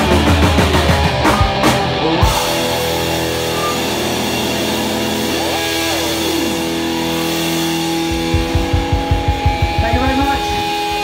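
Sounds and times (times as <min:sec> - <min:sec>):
electric guitar ringing: 0:00.0 - 0:11.0.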